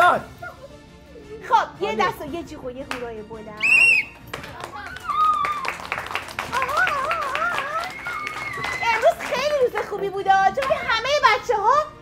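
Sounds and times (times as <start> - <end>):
small group clapping: 2.8 - 11.1
high wavering cheer: 3.6 - 9.4.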